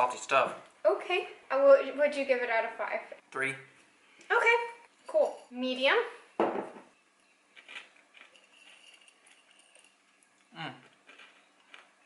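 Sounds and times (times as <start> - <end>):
rustling and crunching of eating: 7.0 - 12.0
person humming: 10.5 - 10.8.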